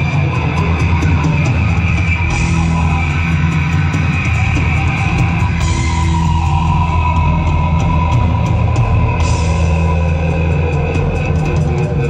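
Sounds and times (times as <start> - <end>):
bass guitar: 0.0 - 12.0
electric guitar sustained notes: 0.0 - 12.0.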